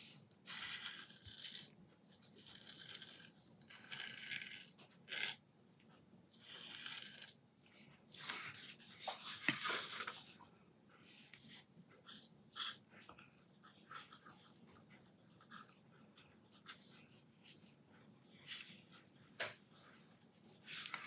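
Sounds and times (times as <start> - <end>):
pen nib scratching paper: 0.4 - 5.4.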